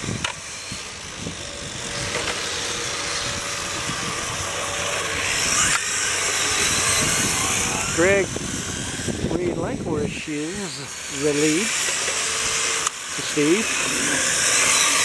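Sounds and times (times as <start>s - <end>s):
model car motors whining: 0.0s - 15.0s.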